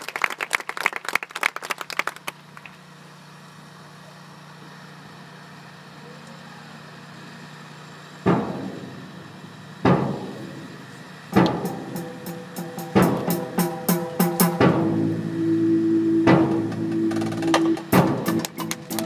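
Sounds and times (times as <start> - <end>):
drums: 11.3 - 19.0
loud accented hits: 11.3 - 19.0
marching band playing: 11.4 - 19.0.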